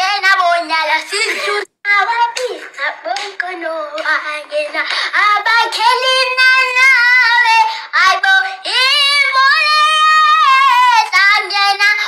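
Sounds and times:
woman singing high unaccompanied: 0:00.0 - 0:12.0.

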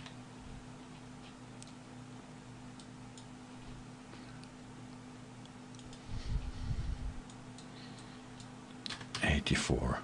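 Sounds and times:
low electrical hum: 0:00.0 - 0:10.0
computer mouse clicks: 0:01.6 - 0:01.8, 0:05.7 - 0:06.0.

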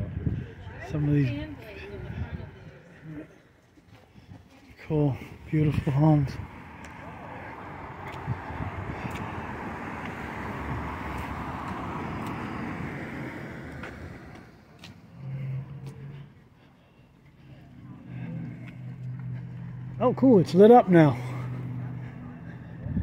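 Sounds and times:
car driving past: 0:05.4 - 0:23.0.

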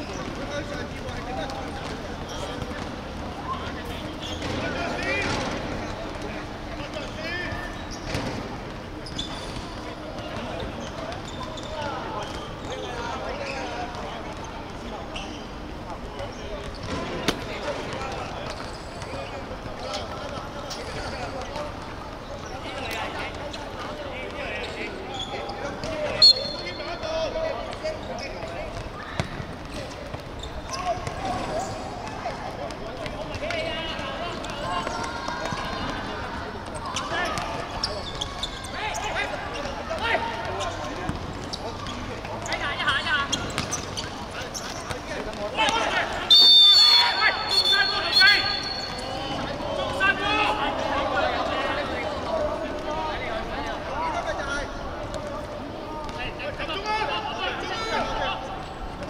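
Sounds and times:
referee's whistle blast: 0:26.2 - 0:26.9, 0:46.3 - 0:49.4
players shouting: 0:44.4 - 0:58.6.

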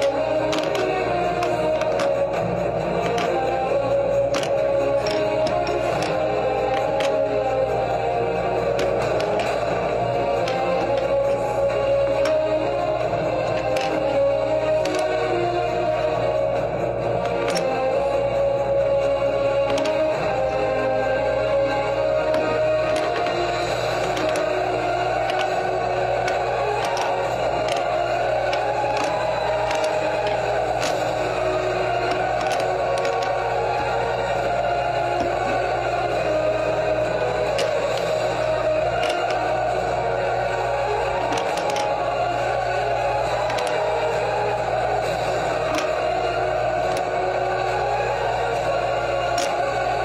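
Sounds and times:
plastic puzzle pieces clicking: 0:00.0 - 0:16.4, 0:17.0 - 0:50.0
background music: 0:00.0 - 0:50.0.

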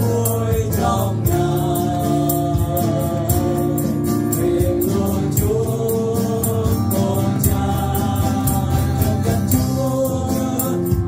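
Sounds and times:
acoustic guitar: 0:00.0 - 0:11.0
keyboard: 0:00.0 - 0:11.0
man singing into a microphone: 0:00.0 - 0:11.0
steady beat: 0:00.0 - 0:11.0.

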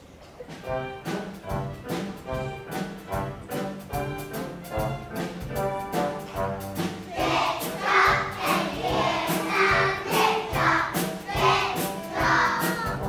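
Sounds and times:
backing music with steady beat: 0:00.5 - 0:13.0
children singing: 0:07.1 - 0:13.0.

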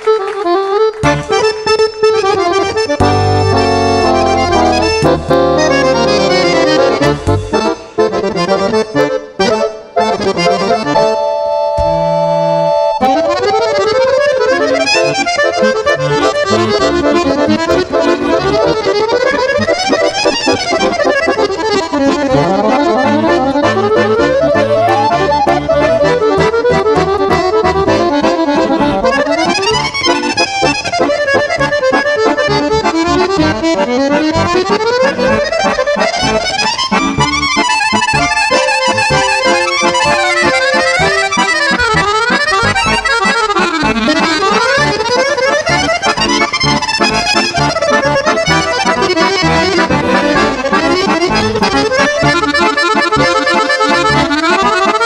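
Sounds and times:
accordions playing: 0:00.0 - 0:55.0.

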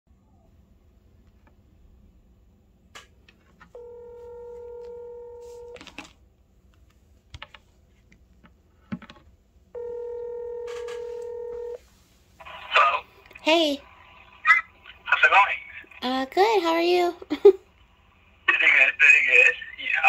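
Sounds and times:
telephone ringback tone: 0:03.7 - 0:05.9, 0:09.8 - 0:11.8.

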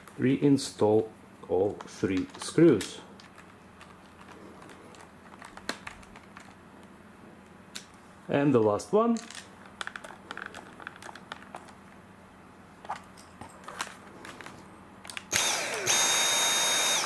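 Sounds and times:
vacuum motor whine: 0:15.2 - 0:17.0.

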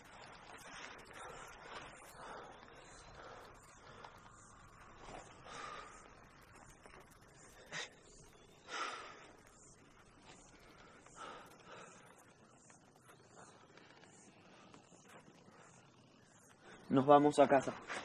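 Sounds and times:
faint breathing: 0:00.0 - 0:16.9.

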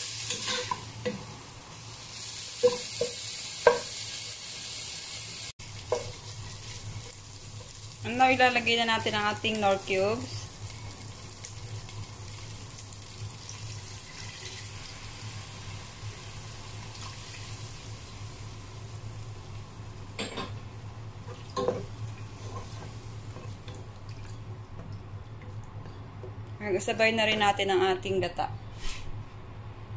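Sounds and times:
meat sizzling in a pot: 0:00.0 - 0:24.5.

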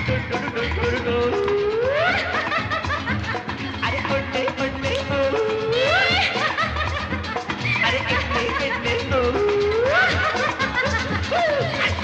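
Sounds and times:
man singing yodel-like sounds: 0:00.0 - 0:02.7, 0:03.5 - 0:06.5, 0:07.7 - 0:12.0.

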